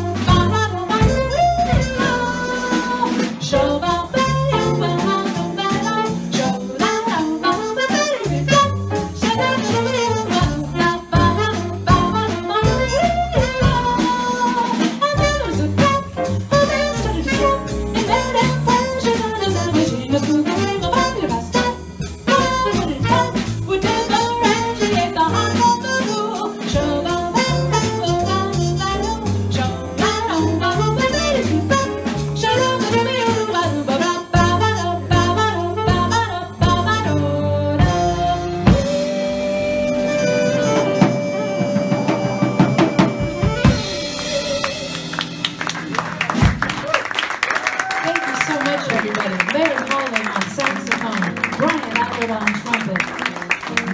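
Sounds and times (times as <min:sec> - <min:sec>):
alto saxophone: 0:00.0 - 0:47.0
upright bass: 0:00.0 - 0:47.0
trumpet: 0:00.0 - 0:48.9
drums: 0:00.0 - 0:53.9
jazz combo playing slow tune: 0:00.0 - 0:53.9
piano: 0:00.0 - 0:53.9.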